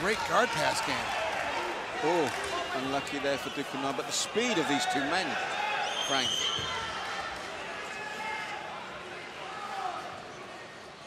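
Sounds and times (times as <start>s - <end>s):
arena crowd hubbub: 0.0s - 11.0s.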